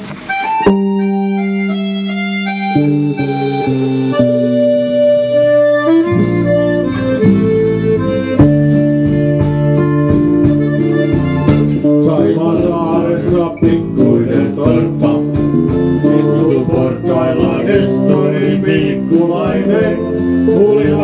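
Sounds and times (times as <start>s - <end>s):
guitar: 0.0s - 21.0s
reedy lead melody: 0.0s - 21.0s
steady drum beat: 6.1s - 21.0s.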